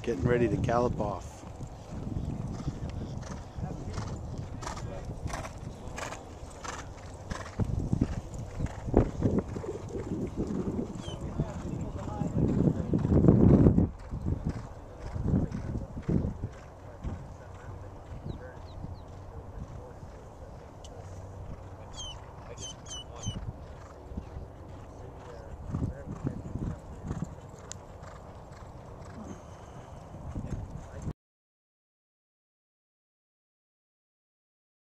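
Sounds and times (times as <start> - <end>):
horses galloping on dirt: 0.0 - 31.1.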